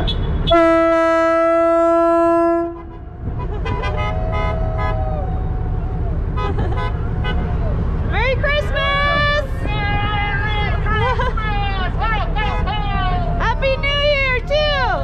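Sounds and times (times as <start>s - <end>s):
horn blast: 0.0s - 5.3s
low steady rumble: 0.2s - 15.0s
people shouting: 3.8s - 6.4s.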